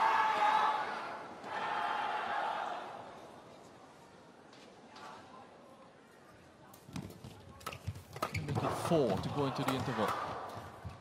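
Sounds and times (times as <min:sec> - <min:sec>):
rackets striking shuttlecock: 0:07.6 - 0:11.0.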